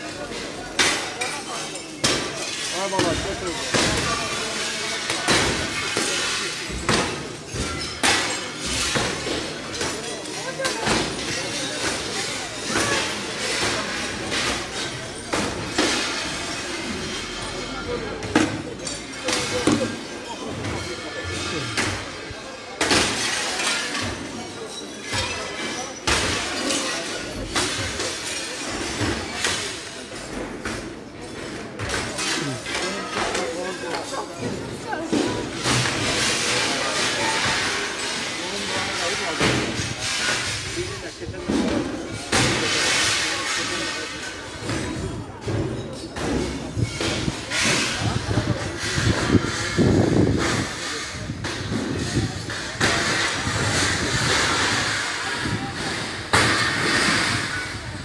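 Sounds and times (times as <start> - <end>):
glass breaking: 0.0 - 30.3, 35.3 - 41.1, 42.0 - 45.0
window glass smashing: 0.0 - 30.3, 35.3 - 41.1, 42.0 - 44.6
faint voices: 0.0 - 58.0.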